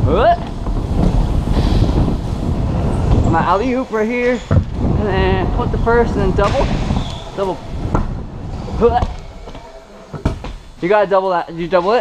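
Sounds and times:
scooter wheels rolling on wood: 0:00.1 - 0:10.8.

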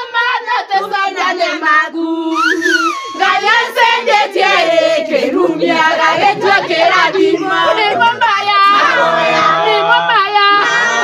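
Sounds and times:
people singing in high voices: 0:00.0 - 0:11.0.

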